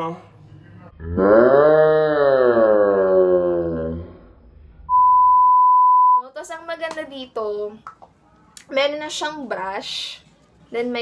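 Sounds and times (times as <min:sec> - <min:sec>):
steady high test tone beep: 0:04.9 - 0:06.2.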